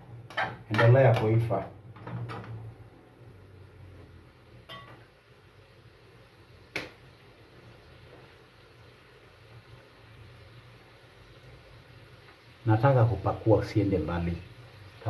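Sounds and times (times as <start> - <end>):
metal spoon clinking on pan: 4.7 - 5.0
spoon knocking in pan: 4.7 - 5.1.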